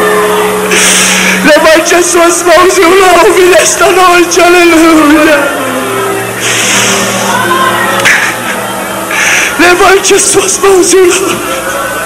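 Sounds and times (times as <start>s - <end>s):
worship music with low notes: 0.0s - 12.0s
congregation voices praising: 0.7s - 12.0s.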